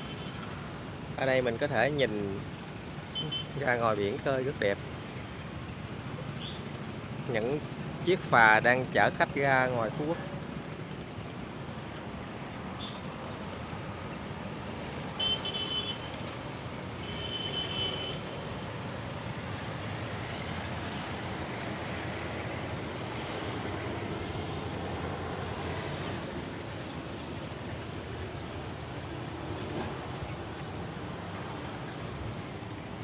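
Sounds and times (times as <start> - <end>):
outdoor background noise: 0.0 - 33.0.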